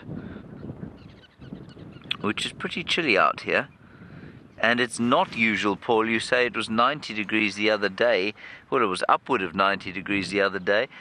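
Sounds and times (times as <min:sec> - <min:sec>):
wind noise: 0:00.0 - 0:11.0.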